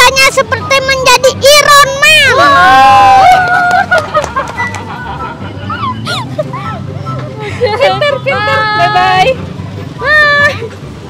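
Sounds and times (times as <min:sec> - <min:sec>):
people talking: 0:00.0 - 0:02.3, 0:05.0 - 0:09.4
crowd chatter: 0:03.8 - 0:11.0.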